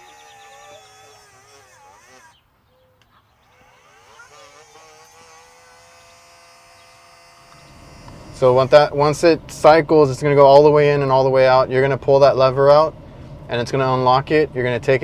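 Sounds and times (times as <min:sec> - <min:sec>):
electric motor whining: 0:00.0 - 0:02.5, 0:03.3 - 0:09.3.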